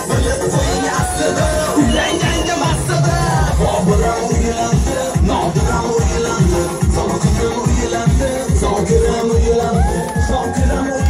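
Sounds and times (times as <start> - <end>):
pop dance song: 0.0 - 11.0
kick drum beat: 7.6 - 11.0.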